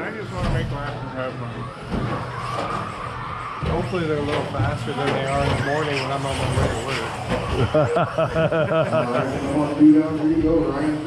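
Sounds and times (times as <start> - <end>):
man laughing: 7.4 - 9.7.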